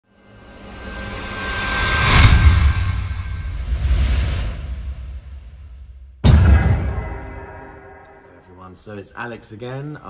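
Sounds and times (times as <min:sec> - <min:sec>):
whoosh: 0:01.6 - 0:08.6
sharp booming hit: 0:06.2 - 0:08.6.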